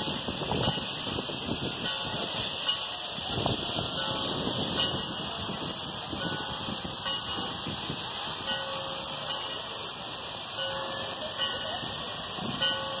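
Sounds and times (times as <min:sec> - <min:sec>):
steam hissing: 0:00.0 - 0:13.0.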